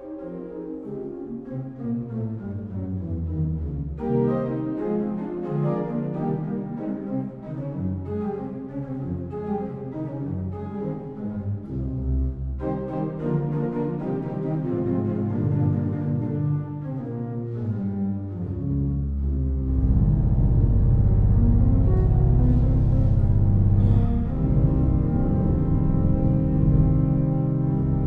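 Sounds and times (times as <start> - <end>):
pipe organ chords: 18.8 - 28.0
deep held organ bass: 19.0 - 28.0.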